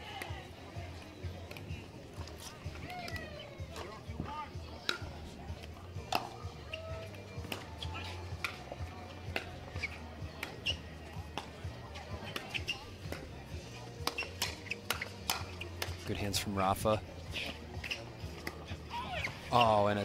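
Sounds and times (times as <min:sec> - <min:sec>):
background music: 0:00.0 - 0:20.0
sneaker squeaks on hard court: 0:12.3 - 0:12.8.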